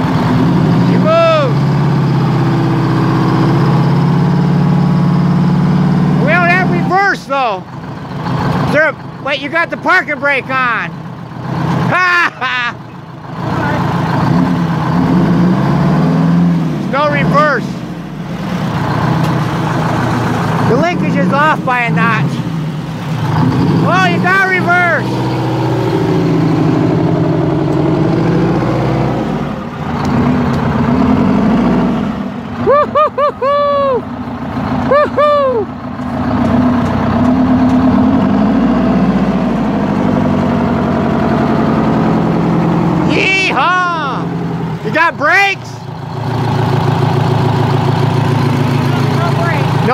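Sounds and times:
truck diesel engine running: 0.0s - 49.9s
person whooping shout: 32.6s - 34.0s, 34.9s - 35.7s.

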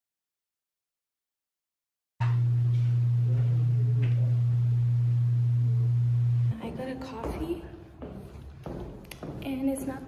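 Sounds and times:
loud steady low hum: 2.2s - 7.8s.

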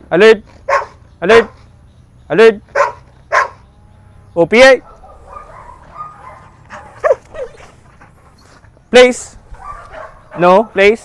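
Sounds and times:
dog whining faintly: 4.9s - 7.7s.

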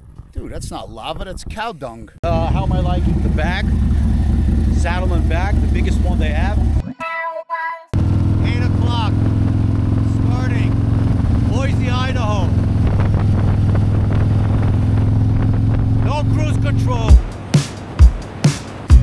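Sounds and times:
motorcycle engine cruising: 0.0s - 1.4s, 2.2s - 6.8s, 8.0s - 19.0s
man's voice: 0.4s - 3.7s, 4.8s - 7.2s, 8.4s - 9.1s, 10.1s - 10.7s, 11.5s - 12.5s, 16.0s - 17.2s.

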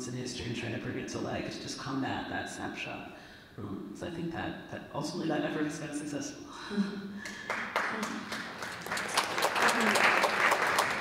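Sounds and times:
audience applause: 7.3s - 11.0s.

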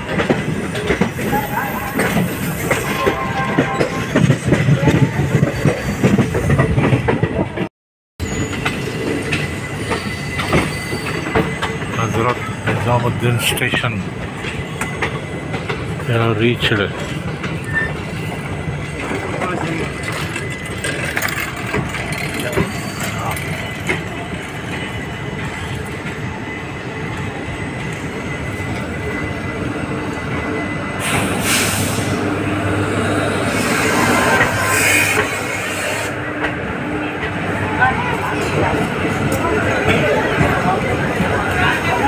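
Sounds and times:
train coaches rumbling: 0.0s - 42.0s
train hiss: 31.0s - 32.3s, 33.4s - 36.2s
voices: 37.0s - 42.0s.

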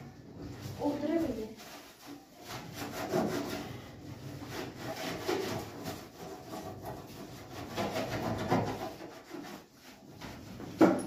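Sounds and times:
scrubbing metal stovetop: 0.0s - 11.0s.

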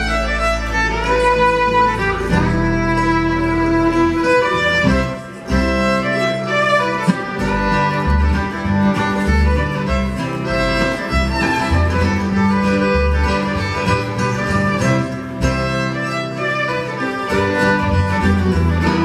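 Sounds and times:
acoustic guitar: 0.0s - 19.0s
fiddle: 0.0s - 19.0s
mandolin: 0.0s - 19.0s
plucked upright bass: 0.0s - 19.0s.

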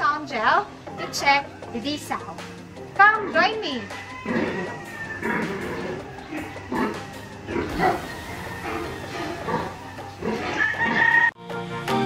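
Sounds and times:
pigs grunting: 3.0s - 11.4s
pig squealing: 3.2s - 11.4s.

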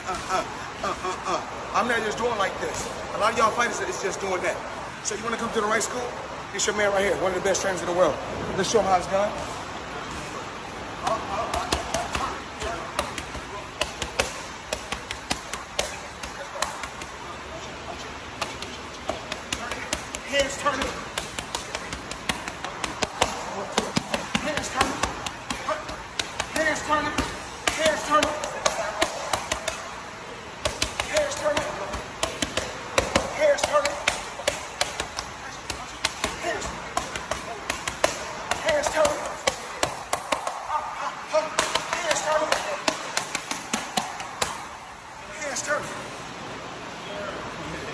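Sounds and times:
boxing gloves hitting mitts: 11.0s - 17.3s, 18.3s - 30.0s, 30.6s - 44.8s.

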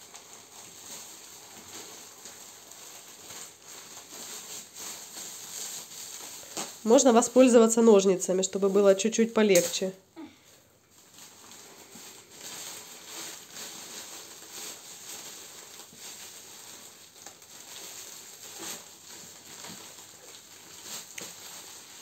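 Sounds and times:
plastic film crinkling: 0.0s - 22.0s.

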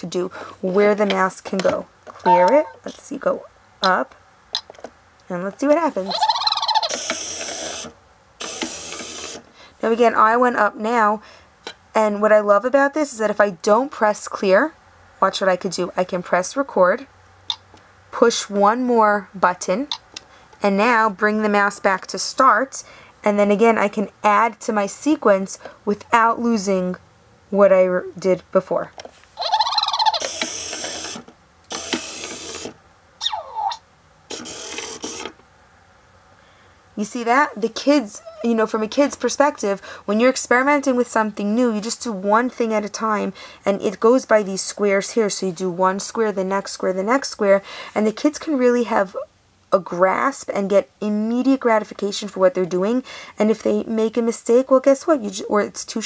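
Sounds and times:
short warbling tone: 2.2s - 2.8s
falling tone: 2.2s - 2.9s
toy gear motors whirring: 6.1s - 9.4s, 29.4s - 35.3s.

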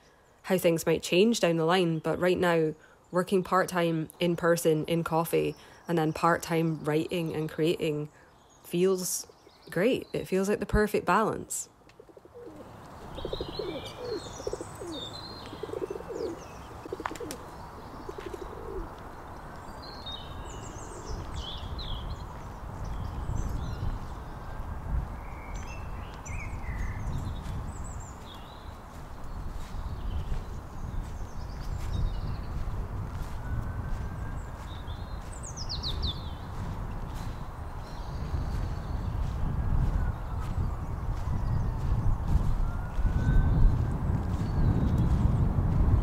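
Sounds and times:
small birds chirping: 0.0s - 11.4s, 12.0s - 24.5s, 25.2s - 45.4s
small bird chirping: 12.1s - 18.9s.

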